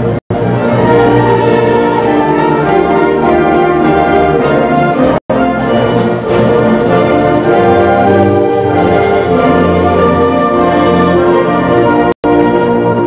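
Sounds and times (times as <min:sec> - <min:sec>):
concert band playing: 0:00.0 - 0:13.0.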